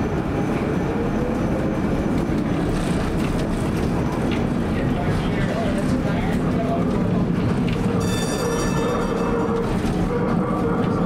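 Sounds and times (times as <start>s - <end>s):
streetcar rumbling on rails: 0.0s - 11.0s
high ringing wheel squeal: 8.0s - 9.8s.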